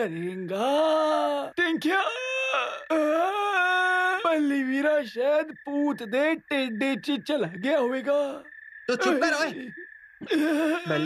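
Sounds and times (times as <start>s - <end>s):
cartoon man wailing: 8.9s - 9.6s, 10.4s - 11.0s.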